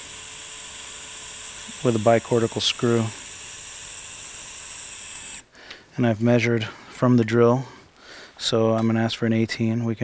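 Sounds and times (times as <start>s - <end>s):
surgical drill whining: 0.0s - 5.8s.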